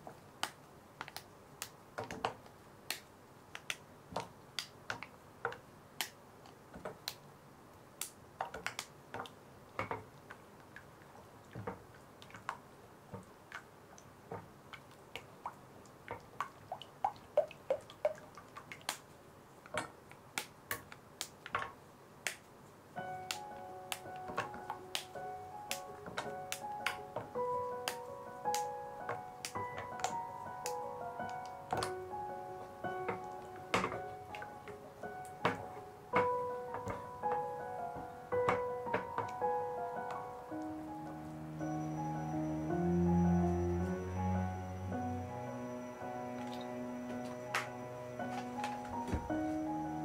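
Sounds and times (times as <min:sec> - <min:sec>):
soft background music: 0:23.0 - 0:50.0.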